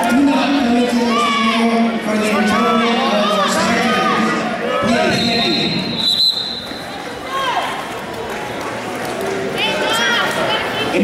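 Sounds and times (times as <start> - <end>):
people shouting in echoing gym: 0.0 - 6.0, 6.6 - 7.9.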